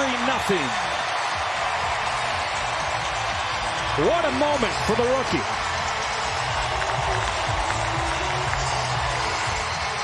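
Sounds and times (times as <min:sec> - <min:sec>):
large crowd cheering: 0:00.0 - 0:10.0.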